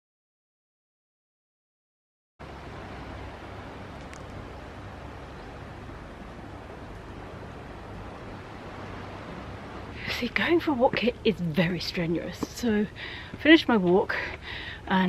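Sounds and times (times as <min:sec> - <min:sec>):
outdoor ambient noise: 0:02.4 - 0:15.0.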